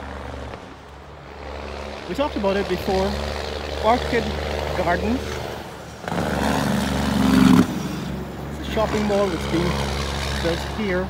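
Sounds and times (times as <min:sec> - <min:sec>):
motor vehicle passing: 0:00.0 - 0:11.0.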